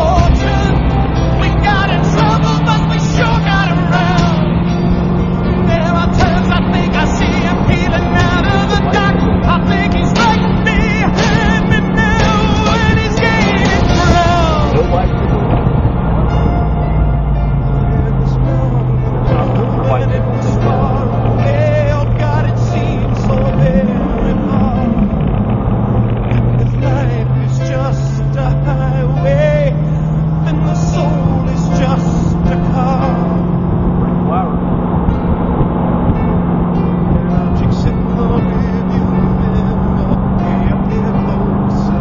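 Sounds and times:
background song with low drone: 0.0s - 42.0s
road noise: 0.0s - 42.0s
wavering sung melody: 0.0s - 42.0s.

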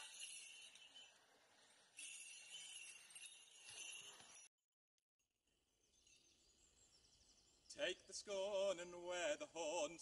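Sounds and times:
distant birdsong: 5.5s - 10.0s
man singing unaccompanied: 7.7s - 10.0s.

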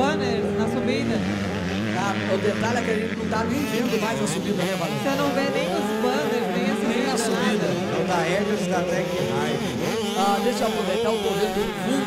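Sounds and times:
motocross bike engines revving: 0.0s - 12.0s.

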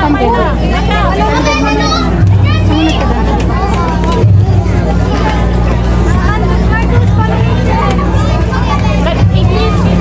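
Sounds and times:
children and adults talking: 0.0s - 10.0s.

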